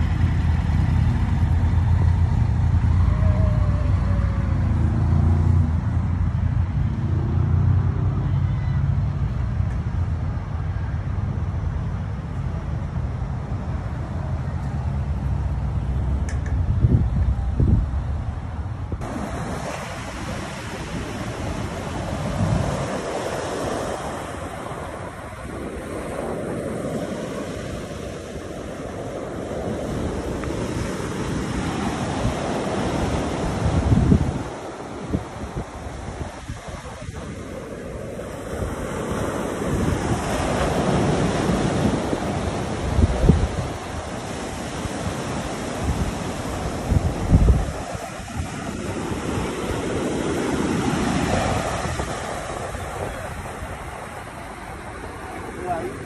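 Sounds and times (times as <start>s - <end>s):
ocean surf breaking on beach: 0.0s - 9.2s, 19.0s - 56.0s
wind buffeting microphone: 0.0s - 56.0s.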